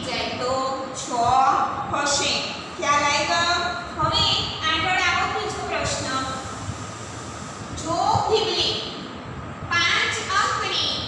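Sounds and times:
woman speaking: 0.0s - 6.5s, 7.8s - 9.0s, 9.7s - 11.0s
low rumble with hiss: 0.0s - 11.0s.

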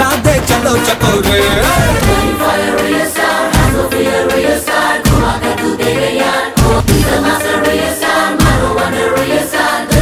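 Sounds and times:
chorus singing over music: 0.0s - 10.0s
heavy drum hits: 0.2s - 2.9s.

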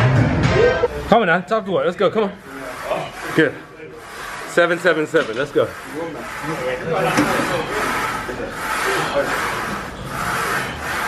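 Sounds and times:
rasping gym machine noise: 0.6s - 11.0s.

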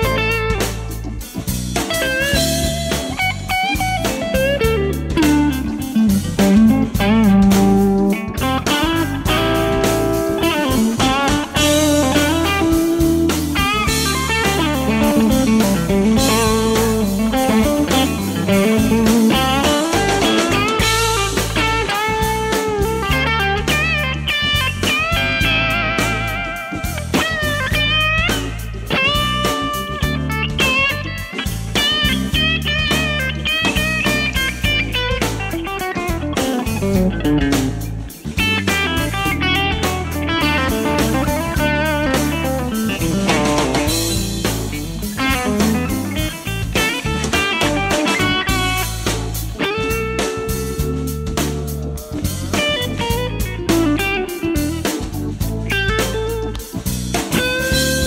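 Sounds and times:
electric guitar lead lines: 0.0s - 58.0s.

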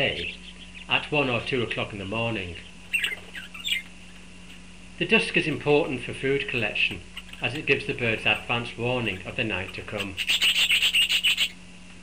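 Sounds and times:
budgerigars chirping: 0.0s - 1.0s, 2.5s - 4.6s, 5.3s - 11.6s.

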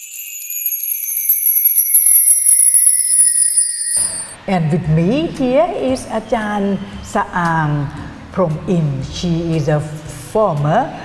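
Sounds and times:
bell-like sparkle effect: 0.0s - 4.4s.

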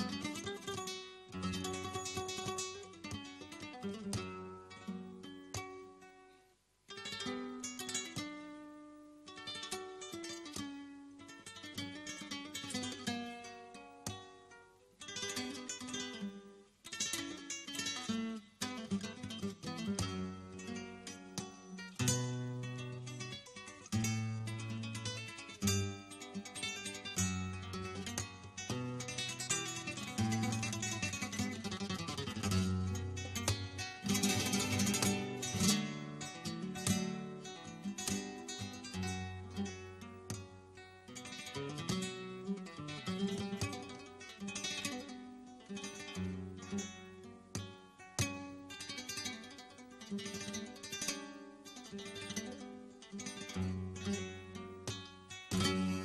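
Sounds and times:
flamenco guitar: 0.0s - 56.0s.

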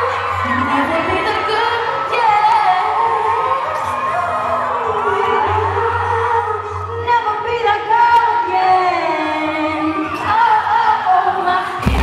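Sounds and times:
crowd cheering and screaming: 0.0s - 12.0s
live pop song: 0.0s - 12.0s.

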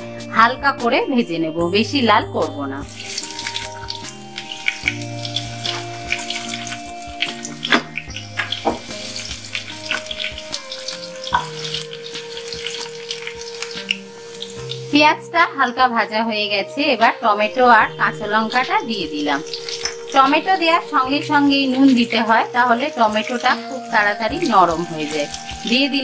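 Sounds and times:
soft background music: 0.0s - 26.0s
onion sizzling in oil: 1.9s - 26.0s
spatula stirring in a pan: 2.9s - 14.9s.

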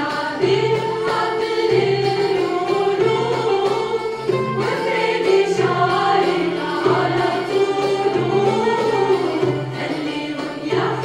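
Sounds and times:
strings and percussion ensemble: 0.0s - 11.0s
women's choir singing: 0.0s - 11.0s.

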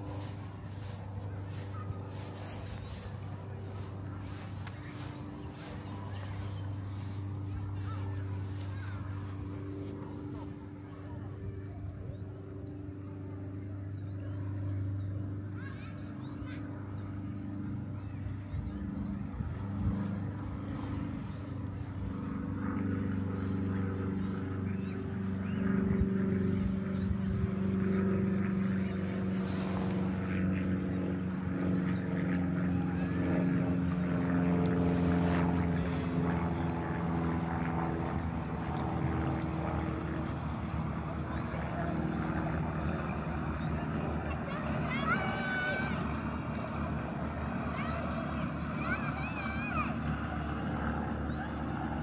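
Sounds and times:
boat engine humming: 0.0s - 13.4s.

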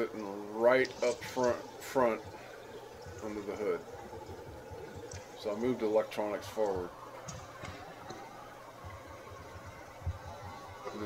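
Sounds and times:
creek water running over rocks: 0.0s - 11.0s
soft low thumps: 6.6s - 11.0s.

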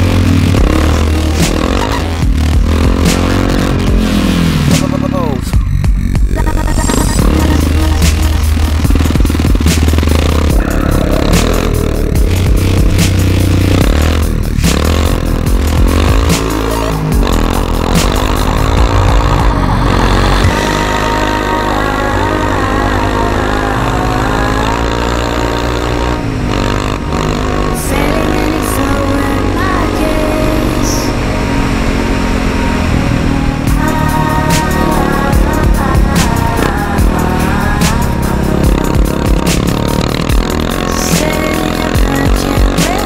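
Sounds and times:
electronic music with heavy bass: 0.0s - 43.0s
quad bike engine revving: 0.0s - 43.0s.

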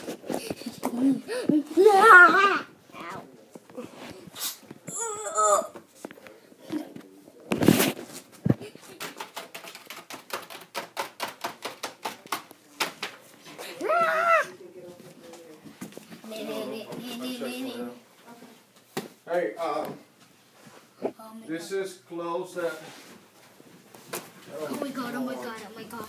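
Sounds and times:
child squealing: 13.8s - 14.6s.

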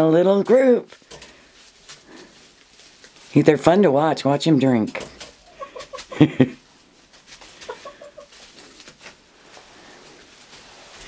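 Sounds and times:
hens clucking: 5.2s - 6.6s, 7.4s - 9.0s
person laughing loudly: 5.5s - 6.6s.

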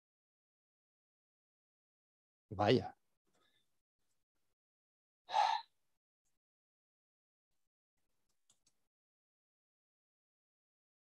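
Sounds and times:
man's sharp breath: 5.3s - 5.7s.

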